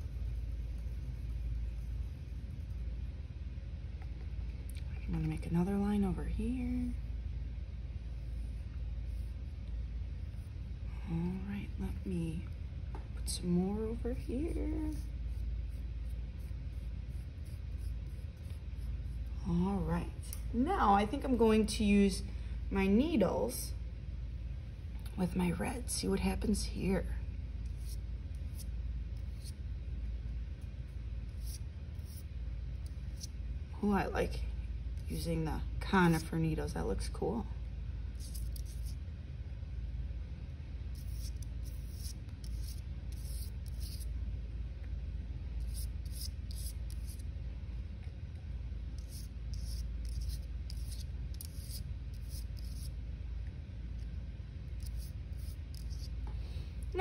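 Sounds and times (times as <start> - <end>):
low room hum: 0.0 - 57.0
needles brushing on paper: 38.2 - 39.0, 40.9 - 44.1, 45.6 - 47.2, 49.0 - 52.9, 54.8 - 56.2.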